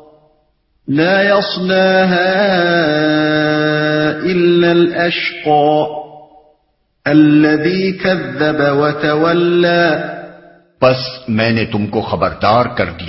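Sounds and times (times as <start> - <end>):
man chanting recitation: 0.9 - 6.2, 7.0 - 13.0.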